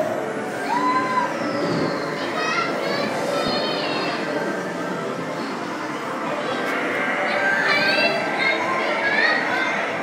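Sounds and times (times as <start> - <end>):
crowd chatter: 0.0 - 10.0
children shouting and squealing: 0.2 - 4.7, 6.3 - 10.0.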